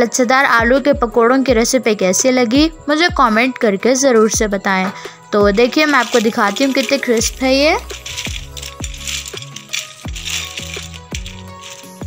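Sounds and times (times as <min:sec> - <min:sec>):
fried snacks crackling on a plate: 0:05.8 - 0:12.0.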